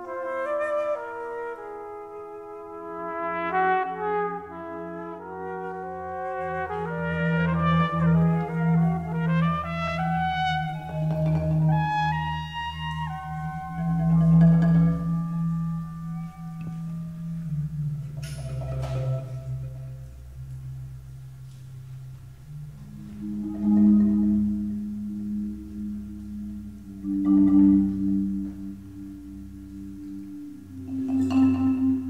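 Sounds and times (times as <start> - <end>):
low drone: 6.8 - 32.0
struck mallet instrument notes: 6.9 - 32.0
sustained ringing tones: 8.0 - 21.3, 22.4 - 32.0.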